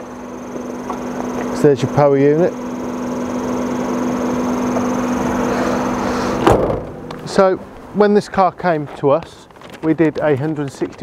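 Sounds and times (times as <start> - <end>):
electric car motor hum: 0.0 - 7.8
car bonnet thump: 6.4 - 7.2.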